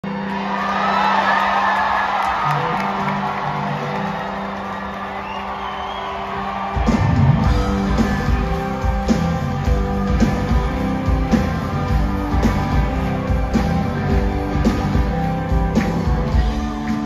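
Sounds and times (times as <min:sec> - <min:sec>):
crowd cheering and whooping: 0:00.0 - 0:17.0
rock band playing live: 0:00.1 - 0:17.0
drums and bass: 0:06.2 - 0:17.0.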